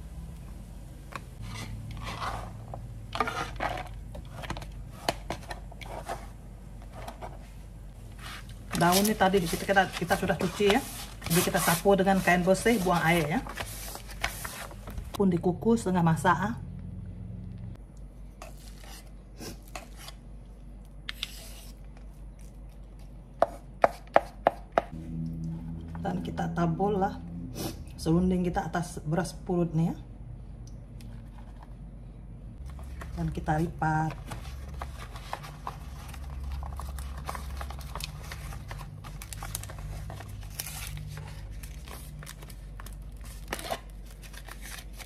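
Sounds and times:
low steady hum: 0.0 - 45.0
wrapper crinkling and rustling: 34.2 - 45.0.

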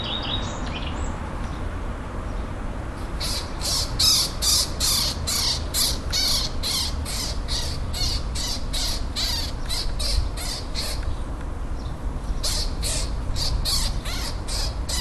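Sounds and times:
magpie chattering calls: 3.2 - 11.1, 12.4 - 15.0.

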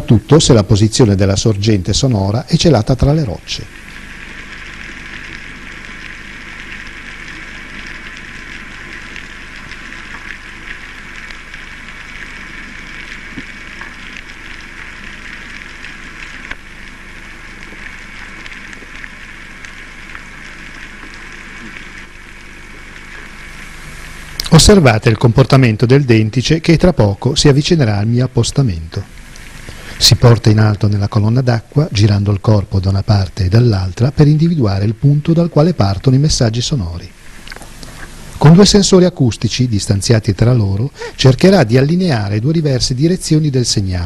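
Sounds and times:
underwater hiss: 3.5 - 24.4, 29.2 - 30.1, 37.1 - 38.4, 40.8 - 41.3
faint underwater clicks: 3.8 - 23.4, 37.3 - 38.4.

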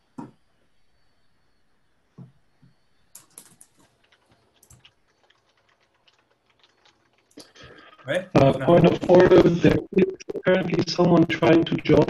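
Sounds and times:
typing on a computer keyboard: 3.2 - 12.0.

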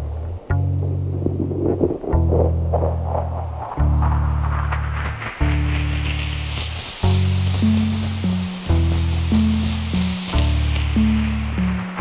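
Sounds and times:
deep held bass notes: 0.0 - 12.0
hissy wash: 0.0 - 12.0.

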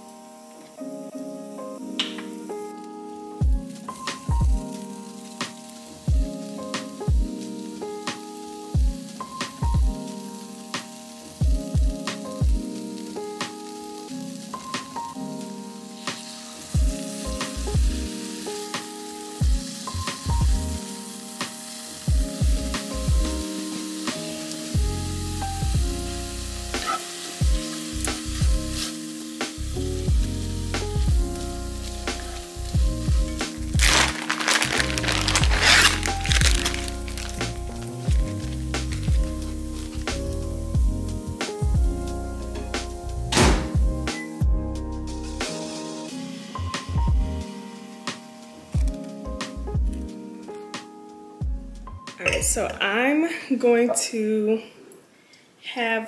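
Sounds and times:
background music with steady beat: 0.0 - 52.8
tofu sizzling in a skillet: 3.7 - 43.2
plastic bag crinkling: 33.8 - 39.2.

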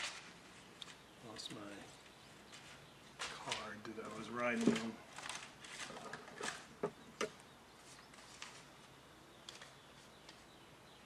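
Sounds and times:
low room noise: 0.0 - 11.0.

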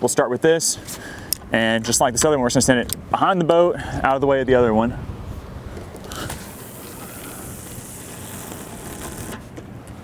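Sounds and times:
low steady rumble: 0.4 - 10.0
fishing line hissing off reel: 6.1 - 9.4.

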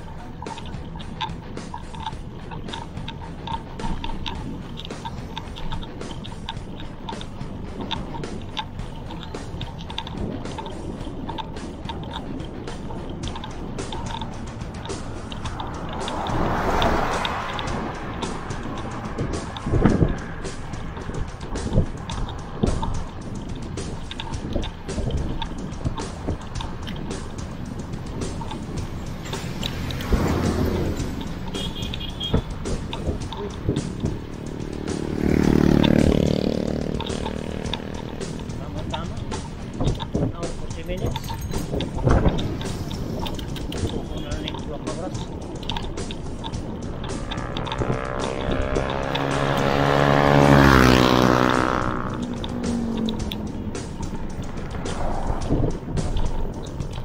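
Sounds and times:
bicycle tyre road noise: 0.0 - 57.0
motor vehicles passing: 0.0 - 57.0
wind buffeting microphone: 0.0 - 57.0
short thumps: 36.4 - 50.8.

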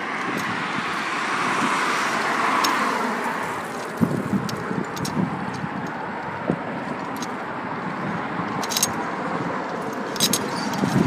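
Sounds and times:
cars passing: 0.0 - 11.0.

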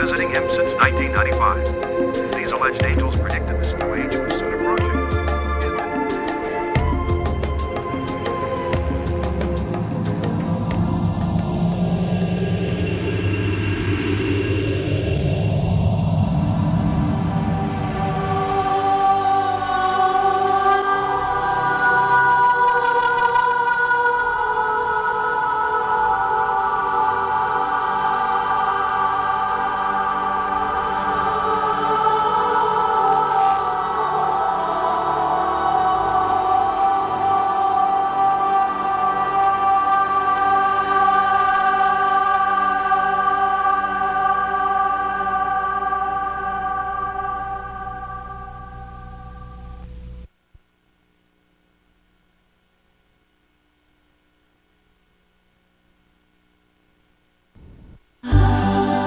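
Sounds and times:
choir singing held notes: 0.0 - 15.5, 17.0 - 48.3, 58.2 - 59.0.

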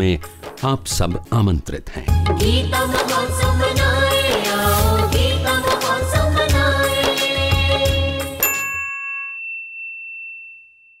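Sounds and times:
bell-like chime ringing: 8.4 - 11.0.

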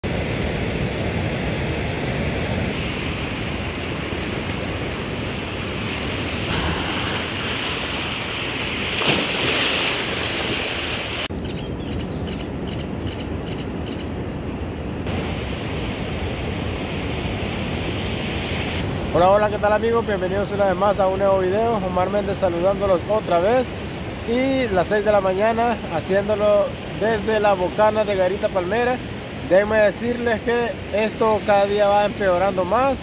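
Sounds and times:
ocean surf breaking on beach: 0.0 - 11.3, 15.0 - 33.0.

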